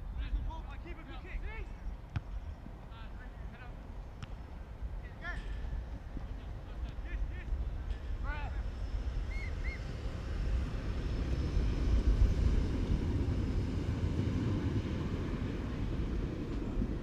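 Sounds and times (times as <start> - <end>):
wind rumbling on microphone: 3.9 - 17.0.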